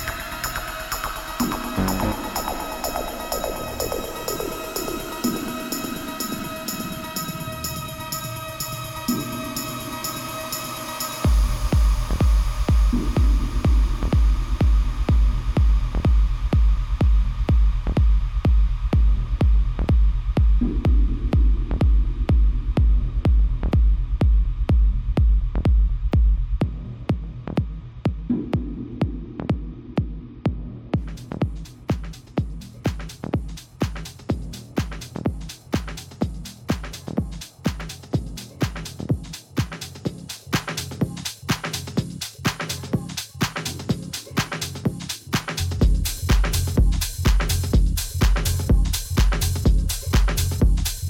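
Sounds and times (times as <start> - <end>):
deep bass: 0.0 - 8.0, 11.2 - 51.0
techno kick drum: 0.0 - 10.5, 11.1 - 51.0
sustained synth chord: 1.6 - 3.2.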